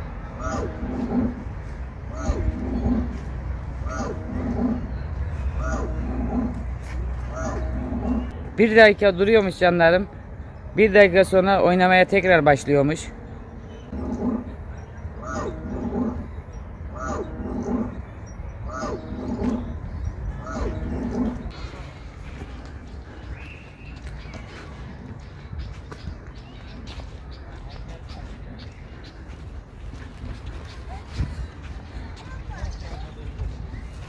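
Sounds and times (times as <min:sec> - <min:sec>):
low wind-like background noise: 0:00.0 - 0:34.0
loudspeaker growling roar: 0:00.3 - 0:08.4, 0:13.9 - 0:21.8.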